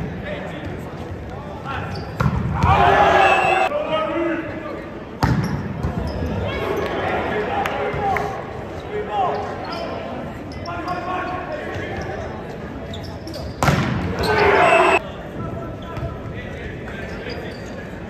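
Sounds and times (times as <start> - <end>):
players shouting: 1.7 - 4.6, 14.1 - 15.0
crowd cheering and shouting: 2.6 - 3.7, 14.2 - 15.0
volleyball strikes: 13.5 - 14.4.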